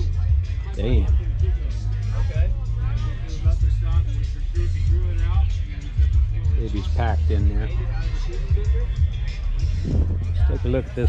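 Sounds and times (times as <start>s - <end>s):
music with heavy bass and vocals: 0.0s - 11.0s.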